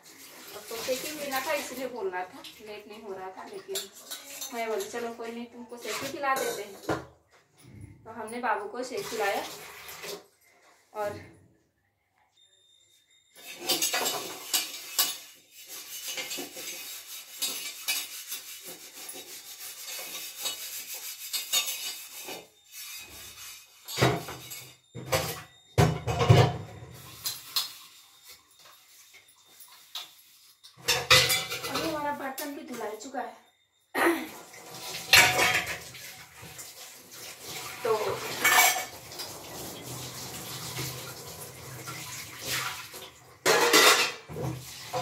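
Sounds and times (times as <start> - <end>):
dishes being scrubbed: 0.0 - 7.6, 8.2 - 10.9, 12.7 - 45.0.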